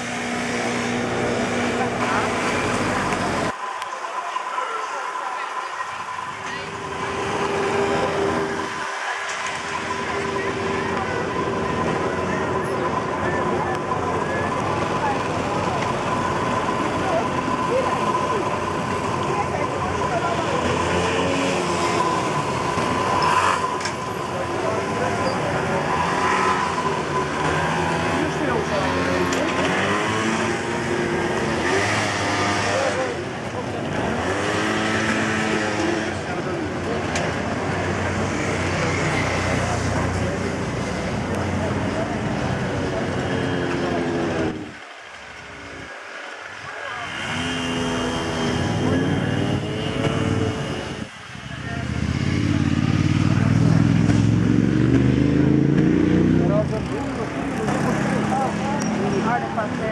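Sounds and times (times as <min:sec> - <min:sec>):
hum of voices: 0:00.0 - 0:54.8
cars and scooters passing: 0:00.0 - 0:59.9.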